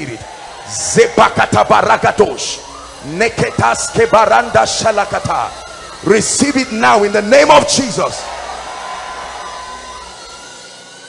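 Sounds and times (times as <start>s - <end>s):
hiss of large hall: 1.8s - 11.0s.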